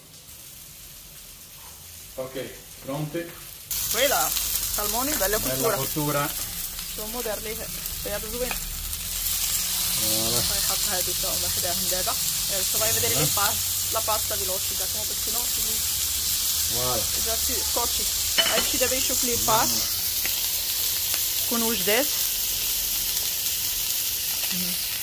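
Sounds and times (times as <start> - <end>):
seafood sizzling on griddle: 0.0 - 25.0
voices talking: 3.9 - 6.3, 10.0 - 15.8, 16.7 - 20.0.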